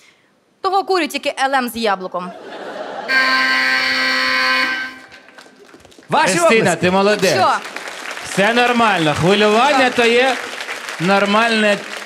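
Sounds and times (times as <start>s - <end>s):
game show buzzer: 3.0s - 5.3s.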